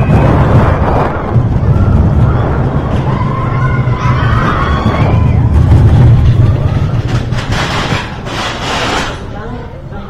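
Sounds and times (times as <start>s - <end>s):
roller coaster cars rolling on track: 0.0s - 10.0s.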